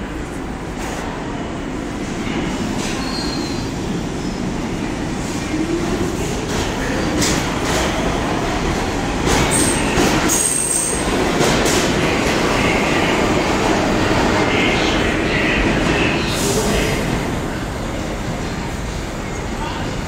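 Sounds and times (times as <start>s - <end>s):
subway train whine: 0.0s - 20.0s.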